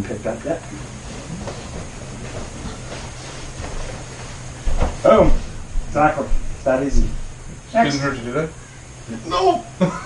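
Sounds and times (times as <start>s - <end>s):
low room hum: 0.0s - 10.0s
faint shuffling: 0.7s - 7.3s
body thump on mat: 4.6s - 5.4s.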